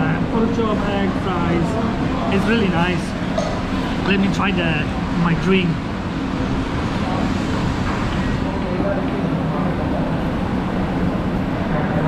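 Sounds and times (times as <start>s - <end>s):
faint chatter: 0.0s - 12.0s
food court background roar: 0.0s - 12.0s.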